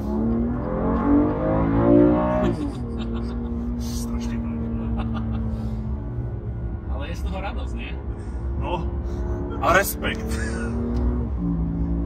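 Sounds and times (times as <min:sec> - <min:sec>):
car engine running under load: 0:00.0 - 0:12.0.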